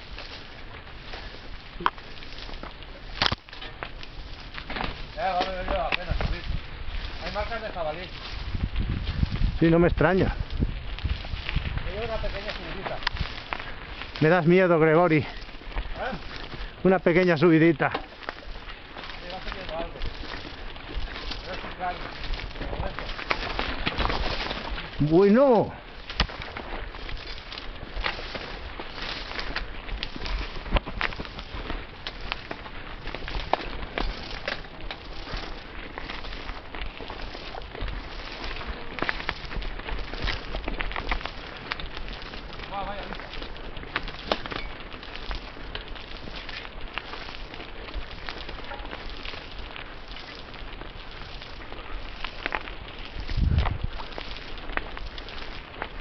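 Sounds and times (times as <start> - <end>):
bike tyres rattling over stones: 0.0 - 56.0.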